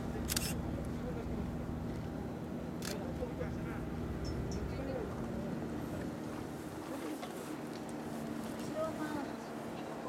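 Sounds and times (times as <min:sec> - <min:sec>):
steady low hum: 0:00.0 - 0:07.0.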